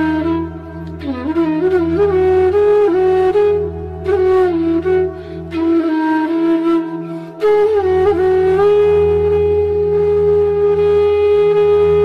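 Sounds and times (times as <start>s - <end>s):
flute long note: 0.0s - 12.0s.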